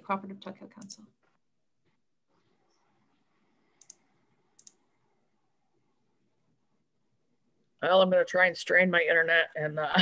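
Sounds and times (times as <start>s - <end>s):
small sharp clicks: 3.7s - 4.8s.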